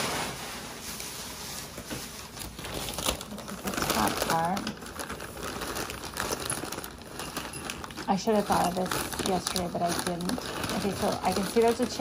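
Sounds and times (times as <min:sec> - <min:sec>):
newspaper crinkling and rustling: 0:00.0 - 0:12.0.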